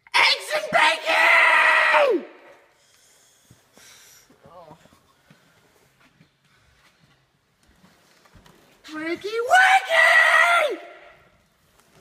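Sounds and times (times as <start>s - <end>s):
loud voice: 0.1s - 2.3s.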